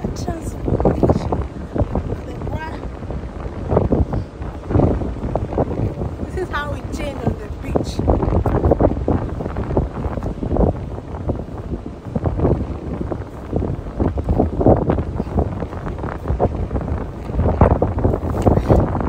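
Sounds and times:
heavy low rumble: 0.0 - 19.0
wind buffeting microphone: 0.0 - 19.0.

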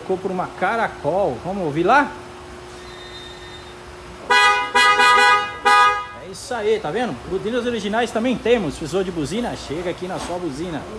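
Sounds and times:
electric car horn blasts: 2.8 - 6.2.

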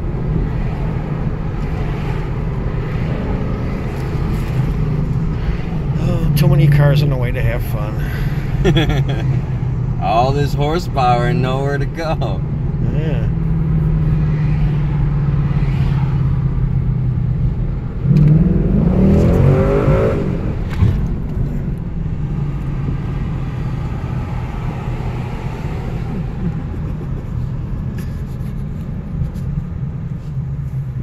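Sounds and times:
car engine revving from cabin: 18.0 - 21.0.

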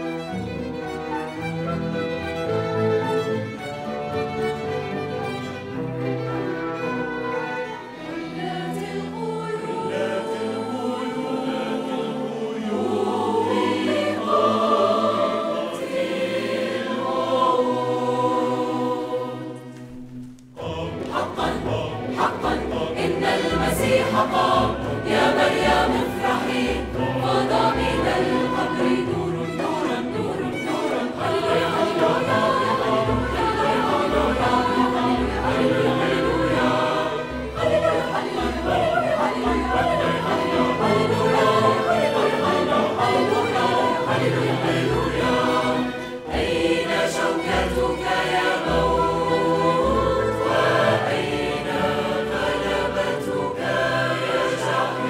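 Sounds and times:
mixed choir singing: 0.0 - 19.9, 20.5 - 55.0
orchestra bowed strings: 0.0 - 55.0.

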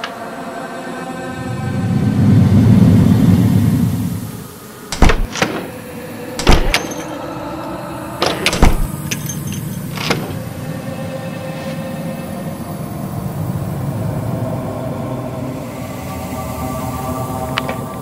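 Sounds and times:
steady low rumble: 1.1 - 5.3
door latches clicking: 4.9 - 7.2, 8.2 - 10.7.

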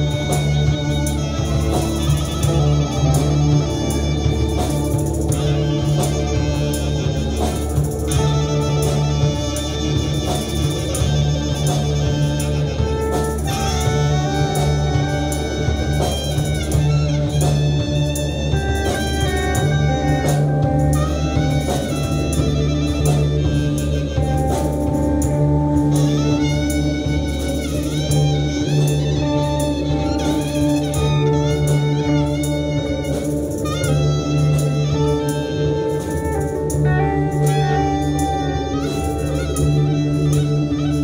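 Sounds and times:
drum strikes: 0.0 - 41.0
electric guitars sustaining notes: 0.0 - 41.0
heavy bass drone: 0.0 - 41.0.

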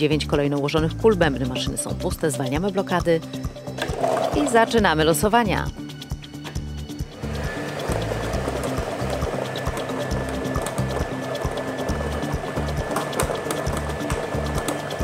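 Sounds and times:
background music with steady beat: 0.0 - 15.0
plastic balls rattling in drums: 3.8 - 4.8.

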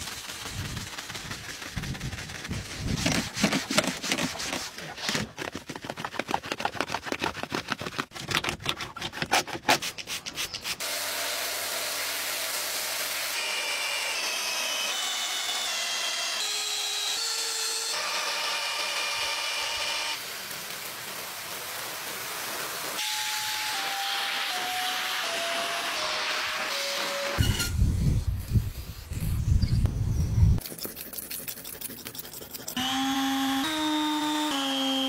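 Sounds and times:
drill brush scrubbing carpet: 0.0 - 5.2, 23.7 - 27.4
drill motor whine: 13.2 - 20.2, 32.8 - 35.0.

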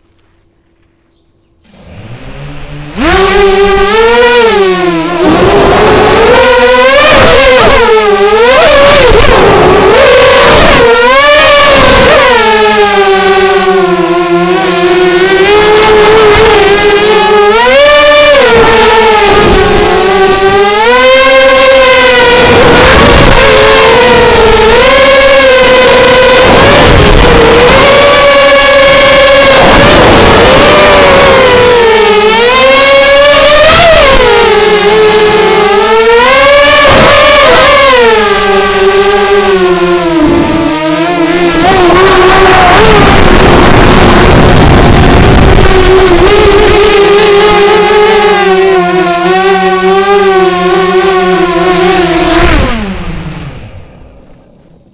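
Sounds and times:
drone motors whining: 0.0 - 54.9.

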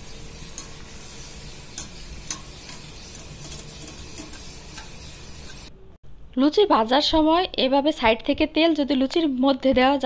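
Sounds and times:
food sizzling in hot oil: 0.0 - 5.7.

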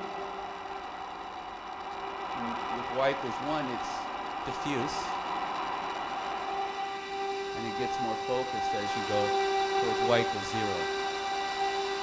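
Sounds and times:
diffuse noise-like synth tone: 0.0 - 12.0
steady pitched tone: 0.0 - 12.0.

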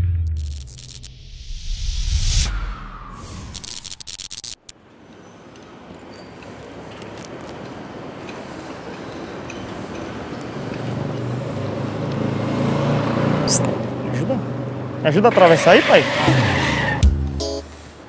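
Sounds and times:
crackly sound effect burst: 0.0 - 4.8
street traffic noise: 3.5 - 18.0
vehicle engine hum passing: 6.6 - 16.3.

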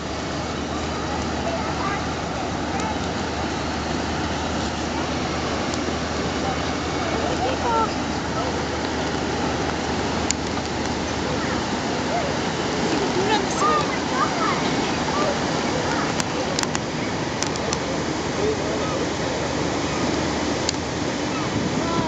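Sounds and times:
propeller wash churning: 0.0 - 22.0
ship engine rumble: 0.0 - 22.0.

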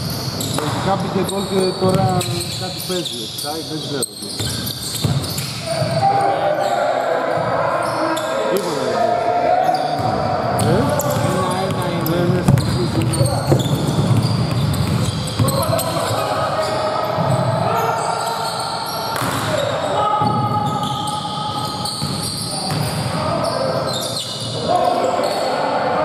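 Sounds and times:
players' voices in a hall: 0.0 - 26.0
basketball bouncing on hardwood: 10.0 - 15.6.

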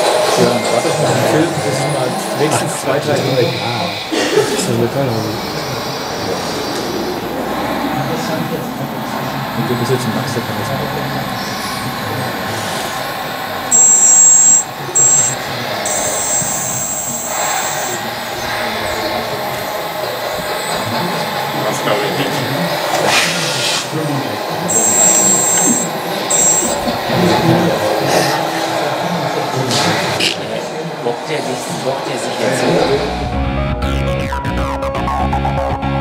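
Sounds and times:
crowd chatter: 0.0 - 33.2
hydraulic pump whine: 10.2 - 22.7, 24.6 - 27.2.

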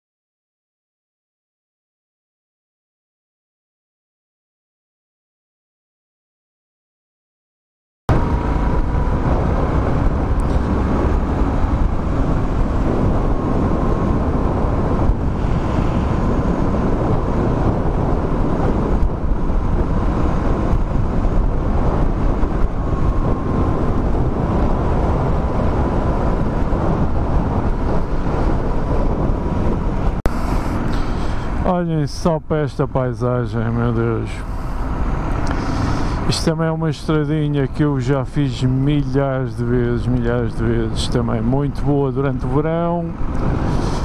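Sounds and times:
motorcycle engine cruising: 8.1 - 31.7, 33.7 - 38.0, 38.6 - 44.0
wind noise on microphone: 8.1 - 44.0.

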